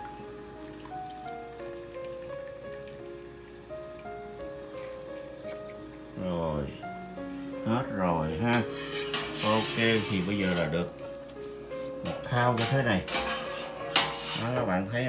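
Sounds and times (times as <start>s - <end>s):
wire strainer scraping a pot: 8.5s - 10.9s, 12.0s - 14.8s.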